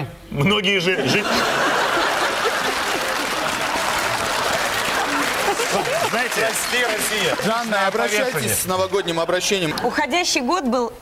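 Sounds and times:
audience applauding: 0:01.3 - 0:09.7.

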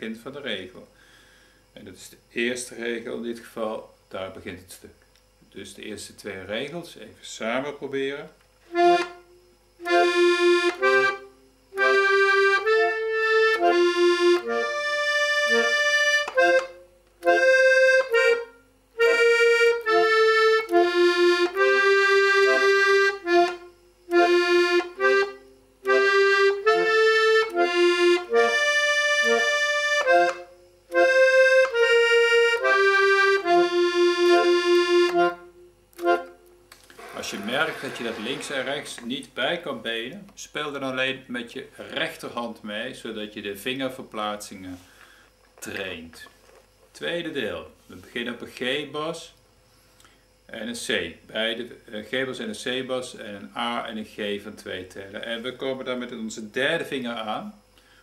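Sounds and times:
accordion melody with bass notes: 0:08.7 - 0:39.0.

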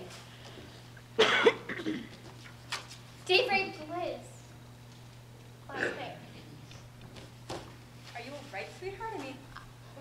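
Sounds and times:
person coughing: 0:01.2 - 0:02.1, 0:05.7 - 0:06.2.

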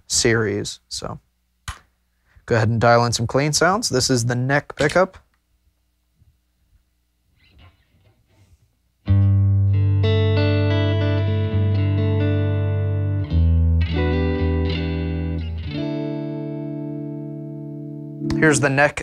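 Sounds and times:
clean electric guitar chords: 0:09.1 - 0:19.0.

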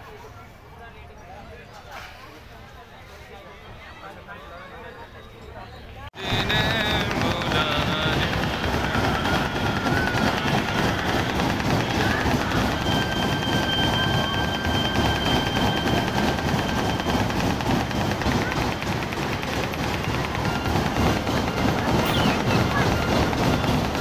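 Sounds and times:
fairground ride cars rumbling: 0:05.7 - 0:24.0
steady high tone: 0:06.2 - 0:24.0.

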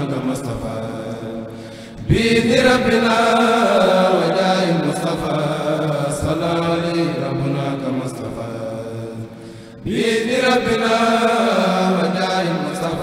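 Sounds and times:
men chanting in unison: 0:00.0 - 0:13.0.

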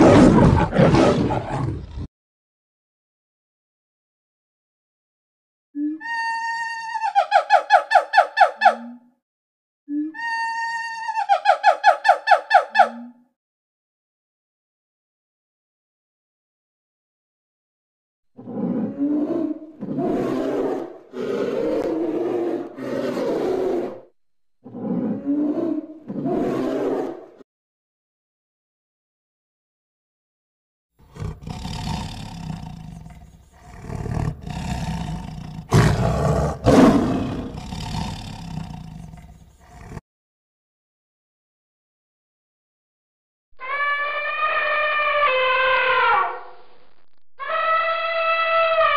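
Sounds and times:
tiger roaring: 0:00.0 - 0:02.1, 0:18.4 - 0:27.3, 0:31.1 - 0:40.0
monkey screeching: 0:10.2 - 0:13.1, 0:43.6 - 0:46.4, 0:47.4 - 0:48.9.

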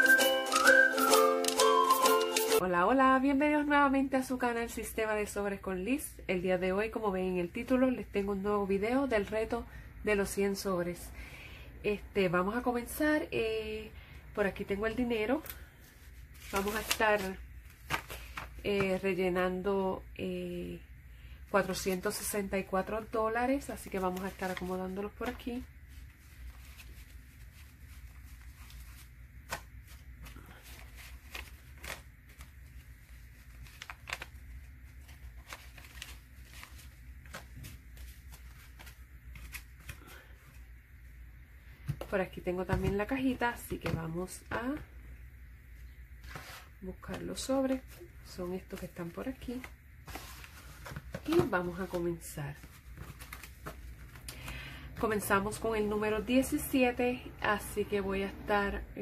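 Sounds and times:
paper rustling: 0:16.0 - 0:19.0, 0:23.7 - 0:40.6, 0:47.4 - 0:54.6.

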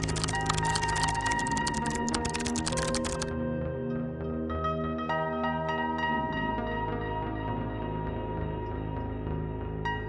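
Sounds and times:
rapid keyboard typing: 0:00.0 - 0:03.3
soft background music: 0:00.0 - 0:10.0.

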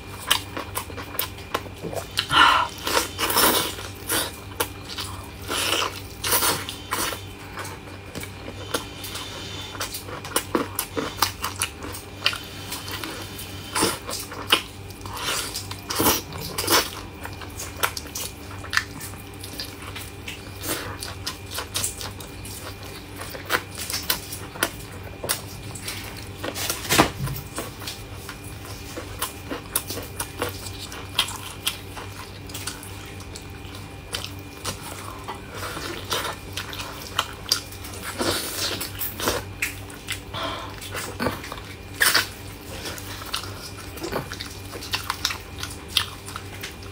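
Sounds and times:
low steady hum: 0:00.0 - 0:46.9
person chewing meat: 0:00.0 - 0:46.9.

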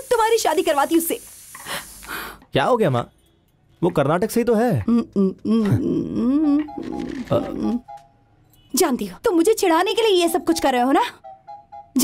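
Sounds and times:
person vocalizing wordlessly: 0:04.8 - 0:07.8
background music: 0:06.1 - 0:08.4, 0:10.3 - 0:12.0.

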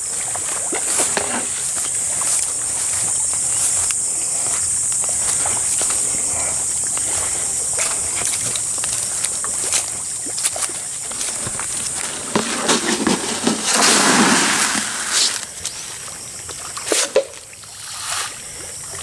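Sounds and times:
footsteps through grass and leaves: 0:00.0 - 0:18.3
steady high hiss: 0:00.0 - 0:19.0
loud splashing in water: 0:12.0 - 0:15.5.

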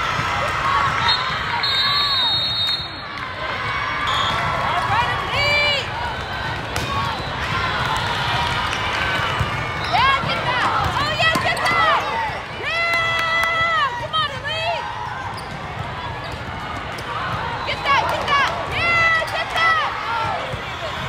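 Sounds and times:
din of a busy hall: 0:00.0 - 0:21.0
volleyball hits: 0:06.4 - 0:14.2.

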